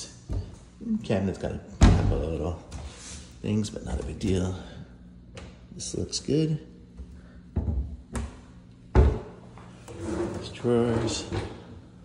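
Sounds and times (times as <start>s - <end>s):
cabinet doors thudding shut: 1.8s - 2.2s, 8.9s - 9.3s.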